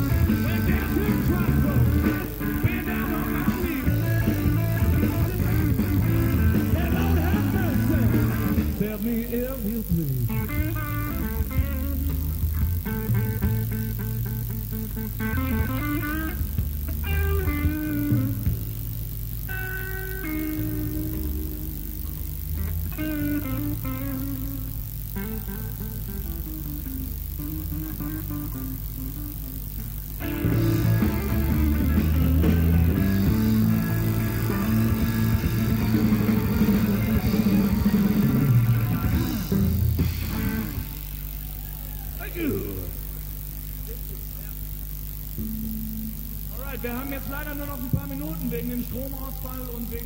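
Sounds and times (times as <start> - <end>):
rock band playing loudly: 0.0 - 9.0, 15.2 - 18.6, 30.2 - 41.2
bass notes: 0.0 - 50.0
electric guitar notes: 0.0 - 50.0
steady low hum: 0.0 - 50.0.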